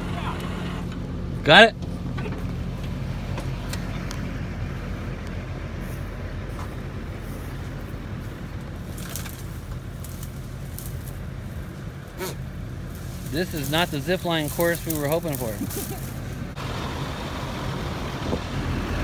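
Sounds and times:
truck engine running: 0.0 - 19.0.

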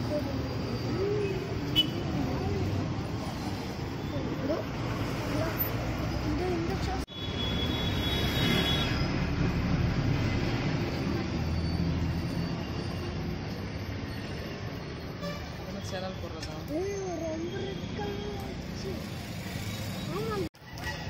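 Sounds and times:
traffic: 0.0 - 21.0.

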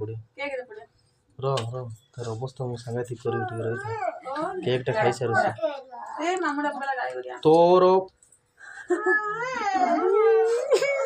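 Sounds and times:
small child crying: 3.3 - 4.4, 8.9 - 11.0.

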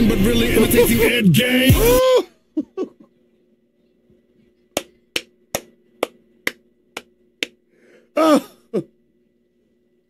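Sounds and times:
hands clapping: 4.7 - 7.6.

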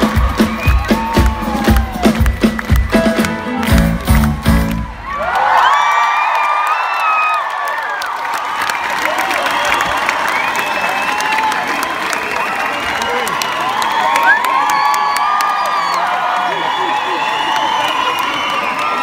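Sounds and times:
live band playing: 0.0 - 5.2
crowd cheering and screaming: 0.0 - 19.0
crowd clapping: 0.0 - 19.0.

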